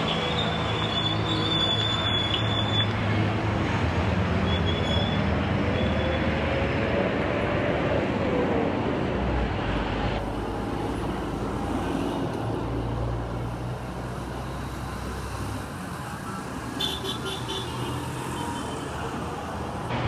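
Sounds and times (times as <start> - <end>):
road noise: 0.0 - 20.0.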